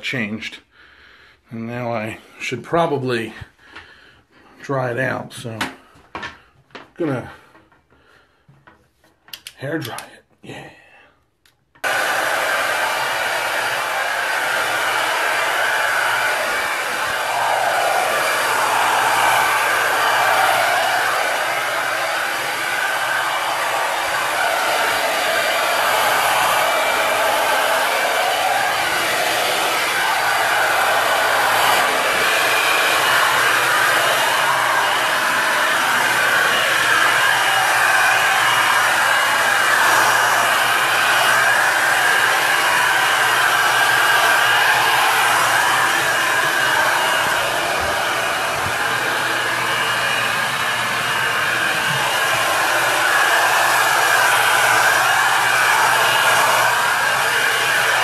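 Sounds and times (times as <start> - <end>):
hair dryer running: 11.8 - 58.0.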